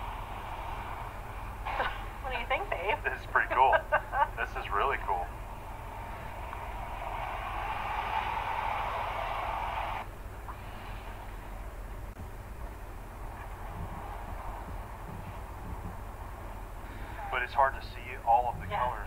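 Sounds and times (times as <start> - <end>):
low rumble: 0.0 - 19.0
geyser erupting hiss: 5.9 - 11.3.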